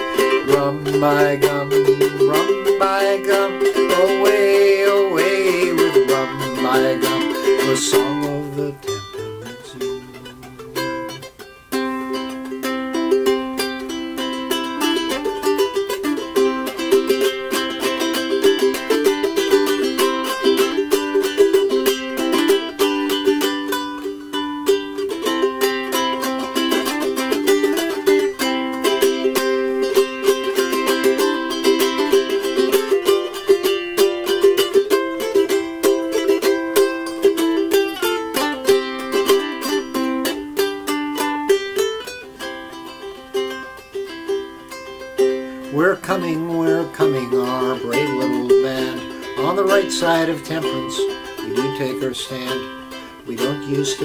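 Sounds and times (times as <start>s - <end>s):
ukulele strumming: 0.0s - 54.0s.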